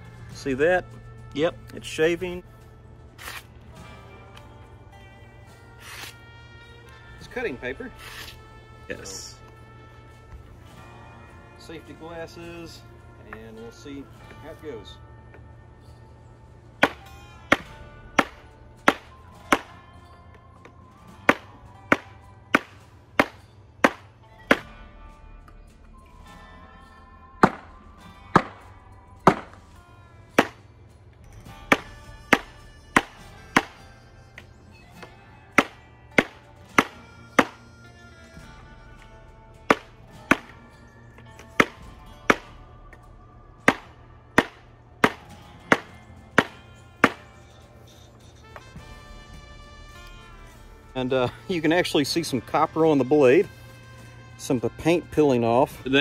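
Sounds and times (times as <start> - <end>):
background music: 0.0 - 56.0
knife striking metal tube: 16.8 - 19.8, 21.3 - 24.8, 31.6 - 34.5, 35.6 - 37.6.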